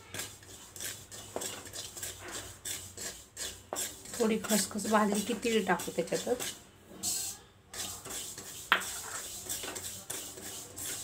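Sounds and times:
spatula scraping seeds in pan: 0.0 - 11.0.

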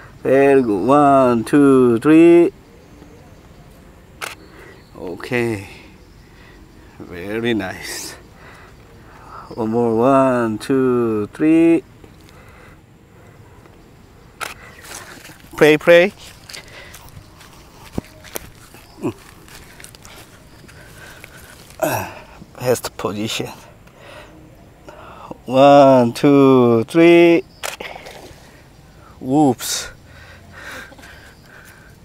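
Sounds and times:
camera shutter click: 4.2 - 4.4, 14.4 - 14.6, 27.6 - 27.8
sharp clicks: 4.2 - 4.5, 14.4 - 15.5, 27.6 - 27.9
footsteps on grass: 14.8 - 22.3.

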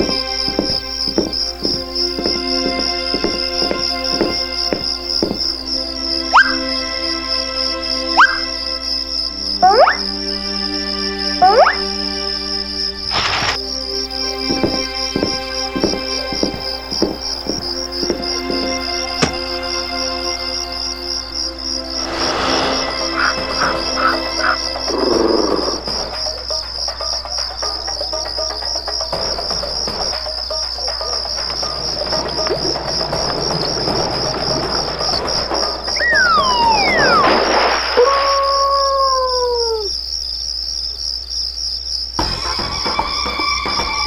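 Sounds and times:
soft background music: 0.0 - 34.9
crickets chirring: 0.0 - 44.0
falling sliding tones: 21.9 - 25.8, 32.2 - 39.8.

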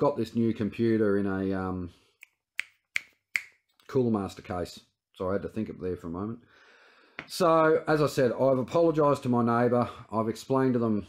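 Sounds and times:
fingers snapping: 2.2 - 3.6.

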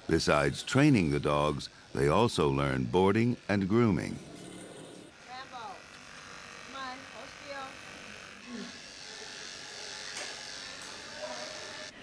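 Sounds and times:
electric clippers running: 0.3 - 12.0.

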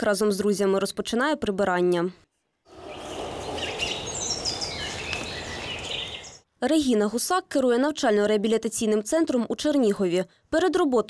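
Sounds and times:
songbirds chirping: 2.6 - 6.5.

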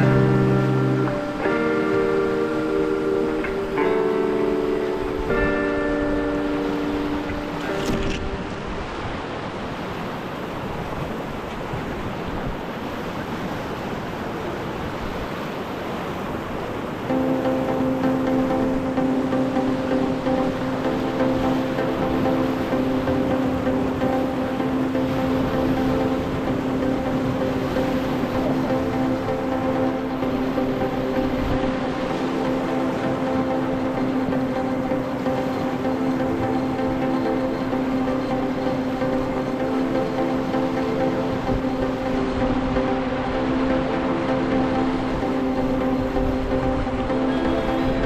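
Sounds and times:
background music: 0.0 - 8.9, 17.0 - 48.0
river rapids rushing: 0.0 - 48.0.

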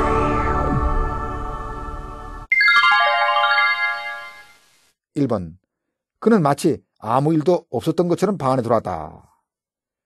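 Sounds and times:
bright descending chime: 2.5 - 4.6.

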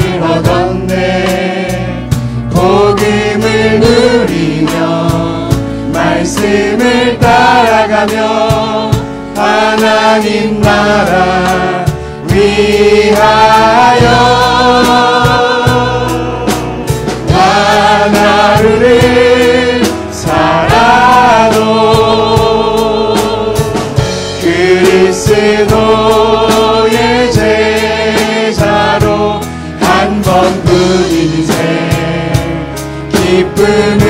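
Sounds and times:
group singing praise song: 0.0 - 34.0
instrumental accompaniment: 0.0 - 34.0.

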